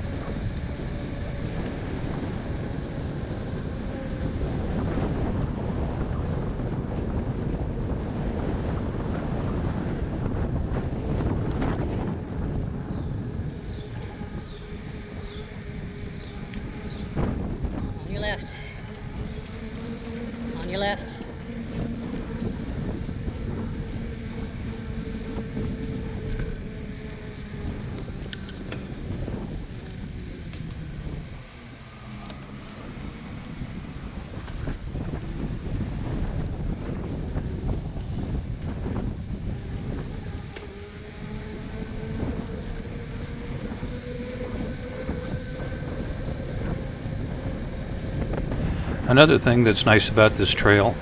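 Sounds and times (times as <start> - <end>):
tyres rumbling on asphalt: 0.0 - 51.0
wind rushing over microphone: 0.0 - 51.0.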